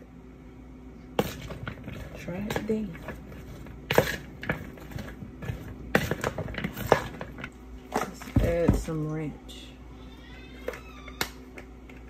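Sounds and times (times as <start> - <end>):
spoon knocking and scraping bowl: 1.2 - 7.5
spoon stirring in a bowl: 1.2 - 8.1.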